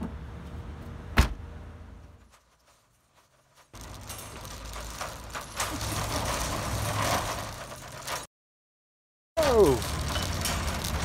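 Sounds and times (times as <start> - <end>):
cart rattling over paving stones: 2.3 - 8.3, 9.4 - 11.0
glass bottles clinking: 9.4 - 11.0.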